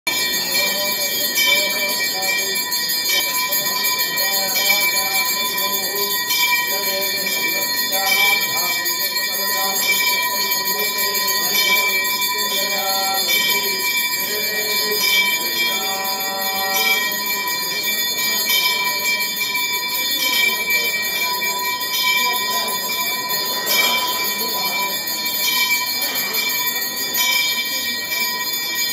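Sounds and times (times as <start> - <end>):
bells ringing rapidly: 0.1 - 28.9.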